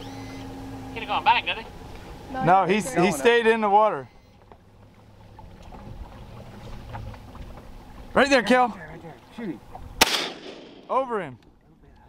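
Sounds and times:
boat motor humming: 0.0s - 10.0s.

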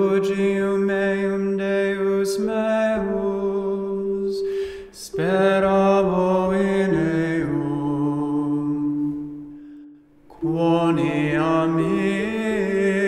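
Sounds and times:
man singing chant: 0.0s - 9.1s, 10.3s - 13.0s
breath: 4.5s - 5.0s, 9.5s - 10.1s.

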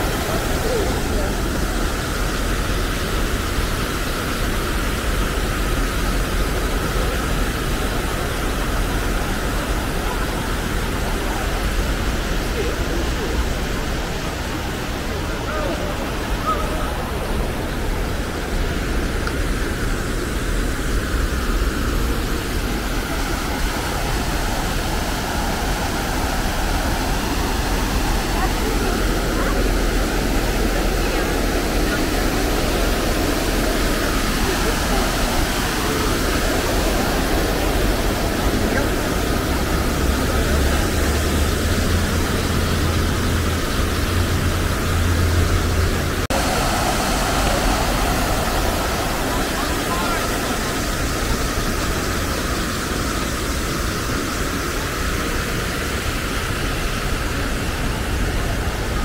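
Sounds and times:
voices of passers-by: 0.0s - 3.6s, 6.9s - 19.8s, 20.5s - 59.0s
city traffic hum: 0.0s - 59.0s
fountain splashing: 0.0s - 59.0s.

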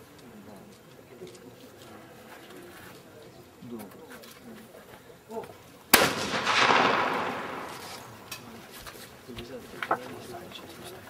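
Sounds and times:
faint voices murmuring: 0.0s - 11.0s
shotgun shot: 5.9s - 8.2s.

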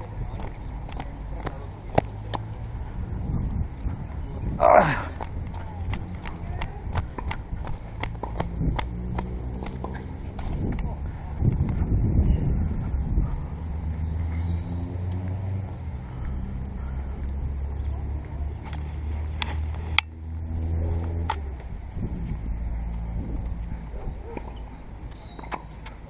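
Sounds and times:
noisy rush: 0.0s - 26.0s.

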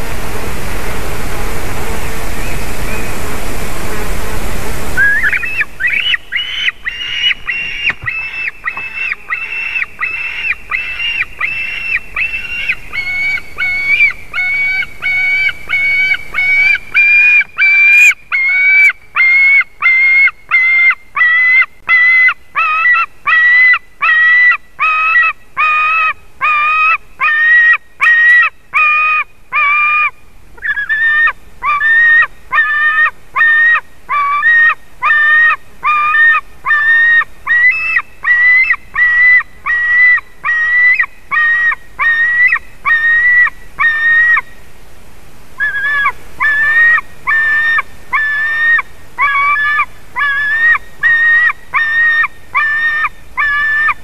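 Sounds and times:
young eagle crying: 5.0s - 44.5s, 45.6s - 54.0s.

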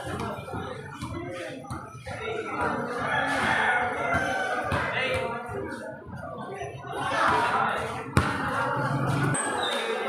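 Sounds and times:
crowd chatter: 0.0s - 10.0s
basketball bouncing on concrete: 0.1s - 2.9s, 3.9s - 5.6s, 7.3s - 9.4s.

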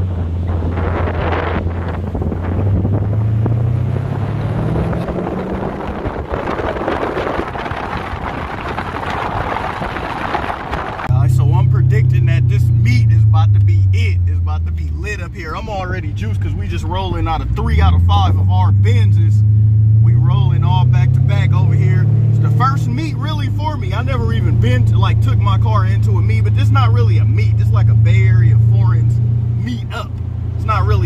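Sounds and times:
car engine pulling: 0.0s - 31.0s
wind and road noise: 0.0s - 31.0s.

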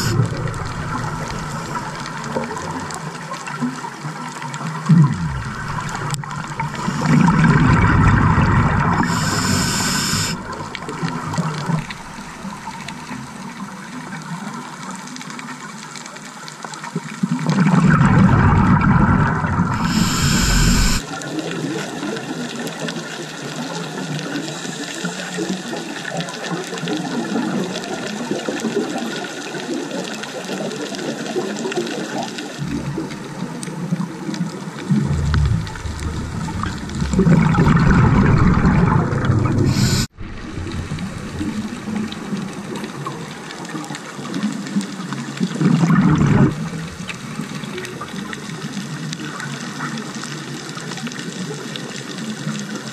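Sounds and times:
regulator hiss: 0.0s - 2.7s, 5.4s - 7.9s, 8.8s - 13.5s, 19.7s - 21.0s, 39.5s - 40.1s
exhaled bubbles gurgling: 0.0s - 15.0s, 17.0s - 52.9s
underwater rush: 0.0s - 52.9s.

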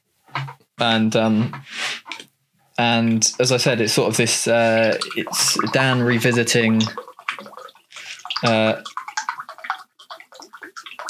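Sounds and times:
person gulping a drink: 4.6s - 11.0s.

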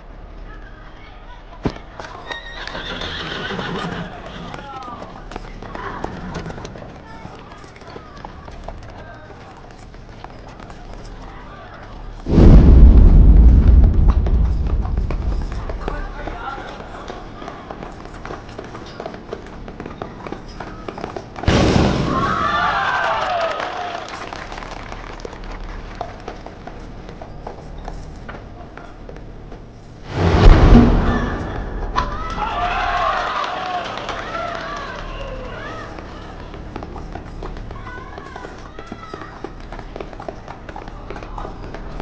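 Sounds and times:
loud hit: 12.3s - 16.3s, 30.1s - 32.8s
deep boom: 12.3s - 16.4s, 30.1s - 32.8s.

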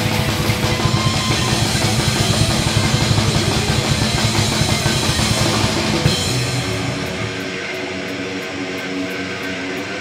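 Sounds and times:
distorted electric guitars: 0.0s - 10.0s
fast drum kit beat with cymbals: 0.0s - 10.0s.

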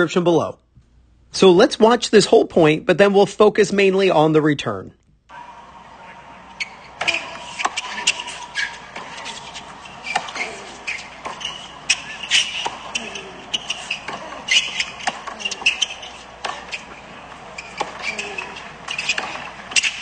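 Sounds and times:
racquet striking tennis ball: 5.3s - 20.0s
tennis ball bouncing: 5.3s - 20.0s.

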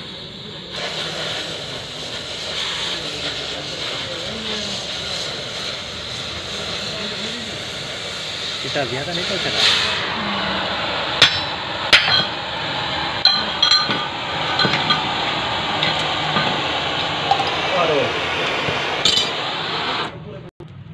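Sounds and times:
gas cutting torch hissing: 0.0s - 20.2s.

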